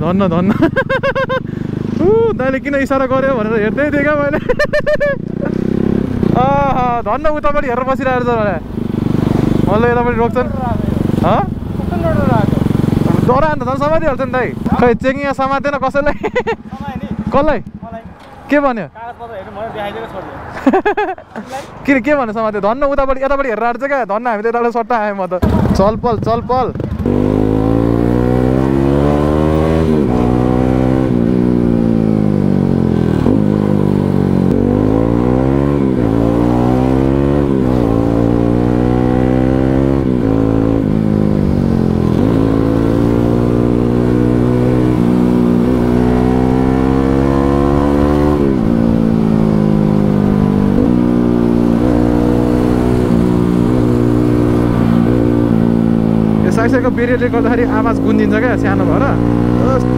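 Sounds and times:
motorcycle engine revving: 0.0 - 19.0, 25.4 - 59.9.

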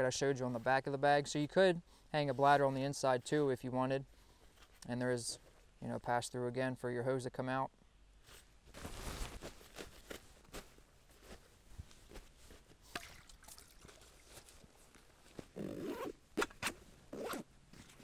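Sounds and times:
fabric and gear rustling: 8.2 - 12.9, 14.0 - 18.0
zipper rasp: 15.5 - 18.0.

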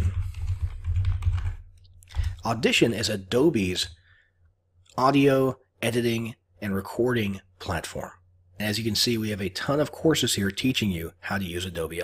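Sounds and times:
keyboard typing: 0.0 - 2.5.

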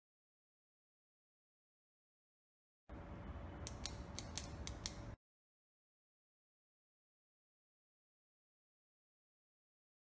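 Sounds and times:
faint steady hum: 2.9 - 5.2.

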